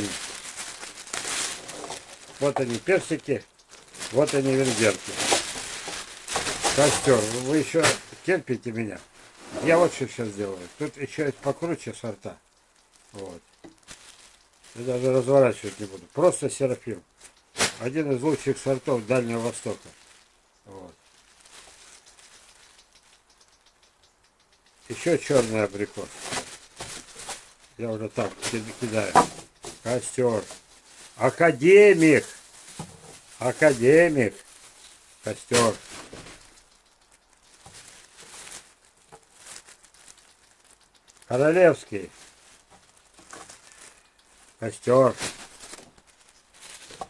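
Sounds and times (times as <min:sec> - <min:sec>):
plastic bag crinkling: 0:00.0 - 0:23.6, 0:24.8 - 0:47.0.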